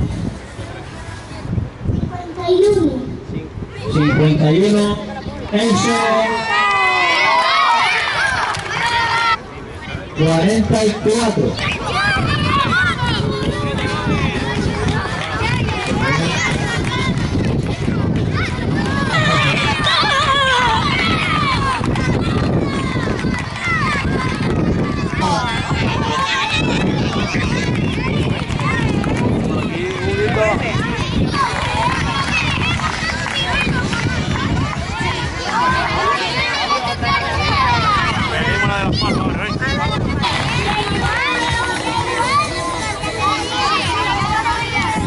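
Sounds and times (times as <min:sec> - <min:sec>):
children shouting and cheering: 0:03.7 - 0:45.0.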